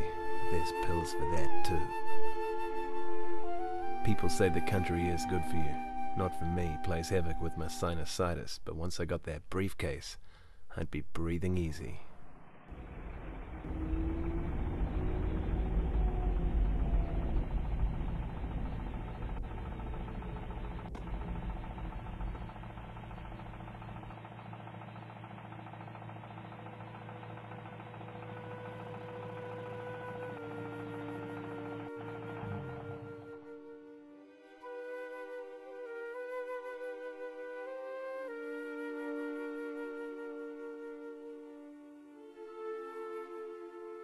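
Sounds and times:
car engine rumble: 0:11.5 - 0:34.1.

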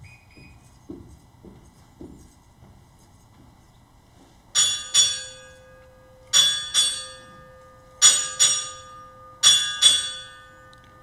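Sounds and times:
ship's bell ringing: 0:04.5 - 0:11.0.

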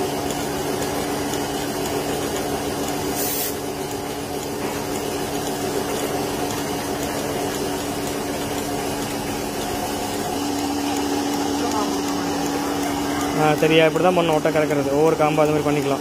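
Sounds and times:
vacuum pump humming: 0:00.0 - 0:16.0.

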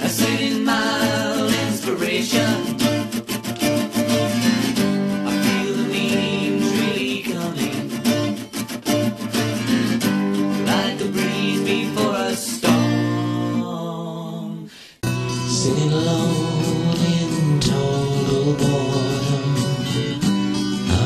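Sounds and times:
acoustic guitar strumming: 0:00.0 - 0:13.8, 0:15.0 - 0:21.0.

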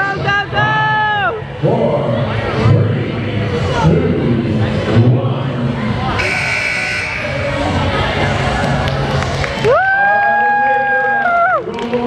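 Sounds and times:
noisy crowd of voices: 0:00.0 - 0:12.0
electronic buzzer tone: 0:06.2 - 0:07.6.

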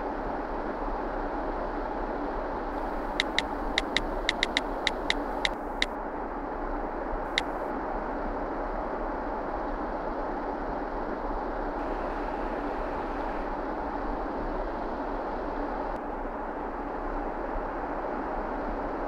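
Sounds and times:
phone keyboard taps: 0:03.2 - 0:05.6.

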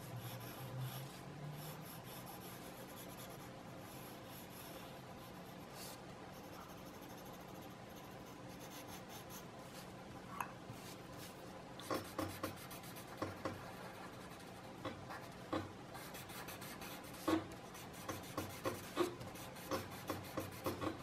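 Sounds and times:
pencil scratching on paper: 0:00.0 - 0:09.5, 0:10.8 - 0:21.0.

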